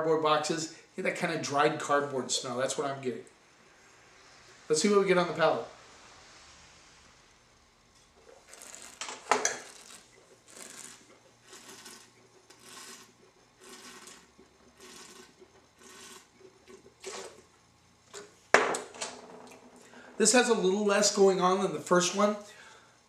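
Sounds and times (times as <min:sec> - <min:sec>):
wine slurped around mouth: 0:08.2 - 0:09.0, 0:09.6 - 0:17.4.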